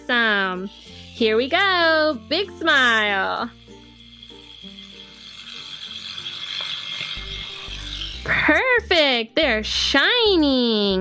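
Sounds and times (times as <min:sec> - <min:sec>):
soft background music: 0:00.0 - 0:11.0
toothbrush scrubbing plastic: 0:00.7 - 0:09.0.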